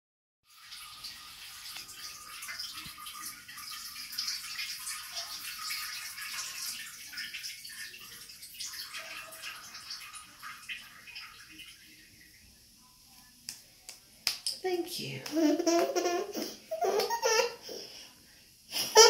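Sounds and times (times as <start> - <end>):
urine splashing into toilet water: 0.5 - 14.6.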